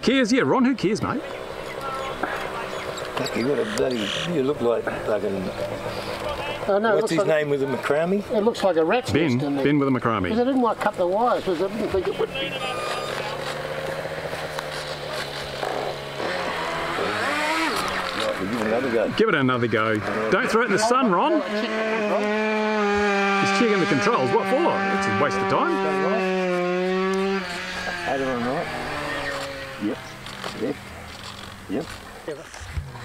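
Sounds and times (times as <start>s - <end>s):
motorbike engine running: 1.0s - 8.8s, 10.4s - 33.0s.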